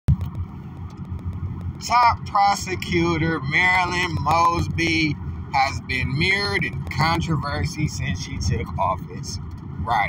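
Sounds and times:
steady low rumble: 0:00.1 - 0:10.0
person reading aloud: 0:01.8 - 0:10.0.

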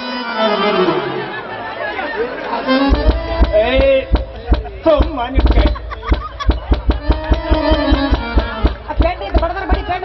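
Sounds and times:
harmonium drone: 0:00.0 - 0:01.6, 0:02.2 - 0:10.0.

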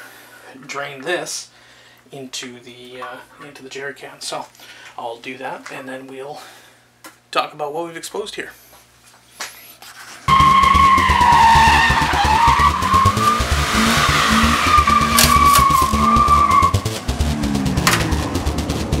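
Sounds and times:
tyre squeal: 0:10.3 - 0:16.9
car engine running: 0:10.3 - 0:19.0.

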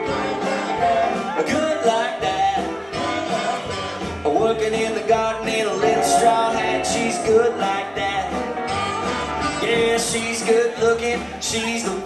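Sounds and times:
live country band playing: 0:00.0 - 0:12.0.

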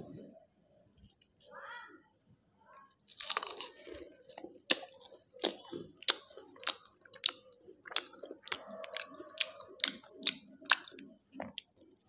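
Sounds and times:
crisp pastry crackles: 0:03.0 - 0:12.0
wet chewing: 0:03.1 - 0:12.0.

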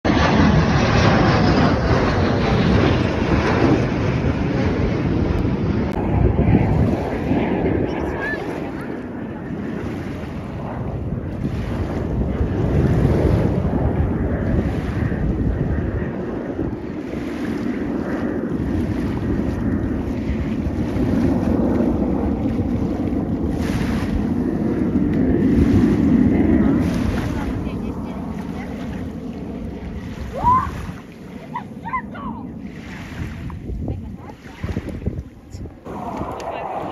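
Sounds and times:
jets roaring overhead: 0:00.1 - 0:36.9
wind buffeting microphone: 0:00.1 - 0:36.9.

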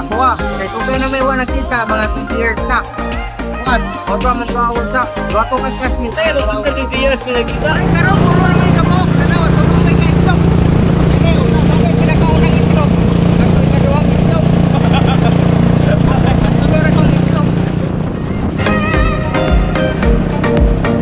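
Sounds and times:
men's voices: 0:00.0 - 0:20.0
motorcycle engine droning: 0:00.0 - 0:21.0.

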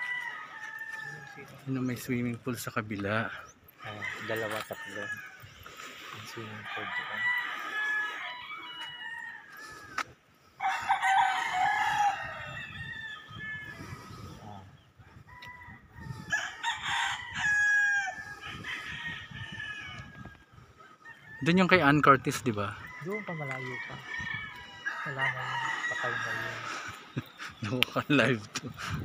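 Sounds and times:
roosters crowing: 0:00.0 - 0:29.0.

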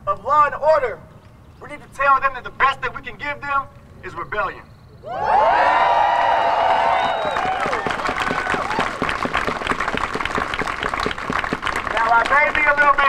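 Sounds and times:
crowd cheering: 0:05.0 - 0:13.0
applause and clapping: 0:06.2 - 0:13.0.

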